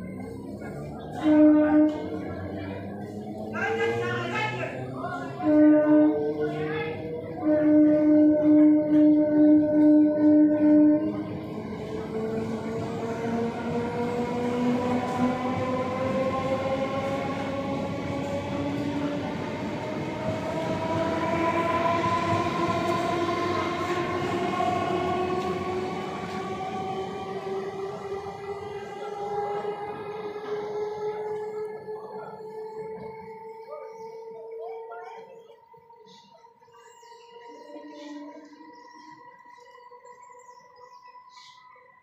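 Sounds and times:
train wheels rumbling: 0.0s - 34.5s
electric train whine: 0.0s - 42.0s.

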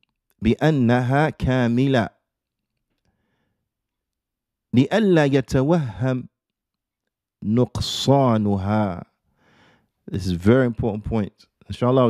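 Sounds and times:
man speaking: 0.4s - 2.1s, 4.7s - 6.3s, 7.4s - 9.0s, 10.1s - 12.0s.

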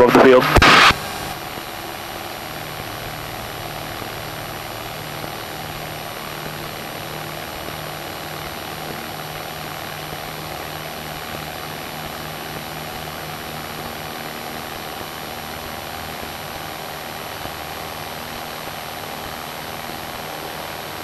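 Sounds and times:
propeller plane engine drone: 0.0s - 21.0s.

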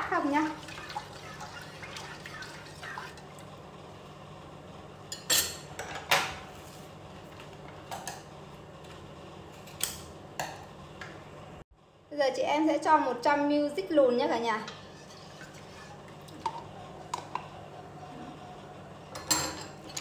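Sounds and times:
spoon stirring liquid in pot: 14.7s - 16.6s.

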